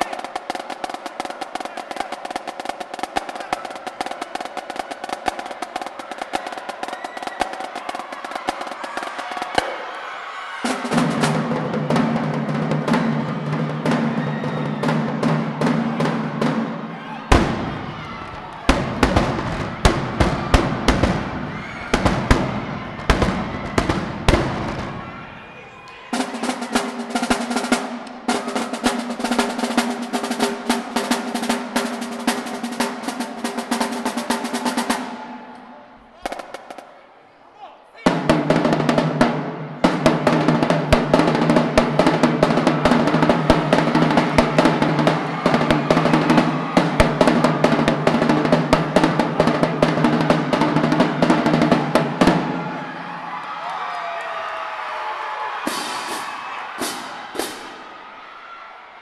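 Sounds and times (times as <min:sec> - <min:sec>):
marching drumline playing: 0:00.0 - 0:10.0, 0:10.6 - 0:25.3, 0:26.1 - 0:35.5, 0:36.2 - 0:36.9, 0:38.0 - 0:53.2, 0:55.6 - 0:58.0.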